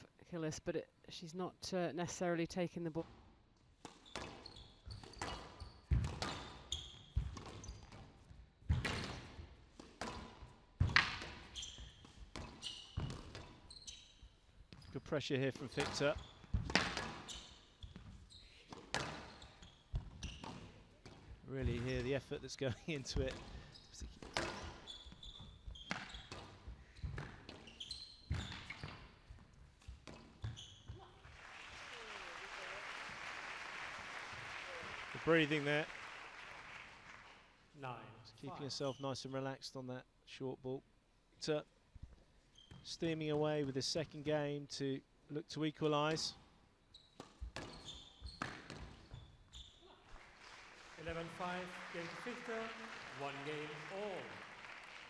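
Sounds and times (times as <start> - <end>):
shoes squeaking on wooden floor: 3.9 - 9.2, 10.8 - 22.2, 23.1 - 31.3, 46.8 - 50.2
crowd applauding: 31.2 - 37.5, 50.1 - 55.0.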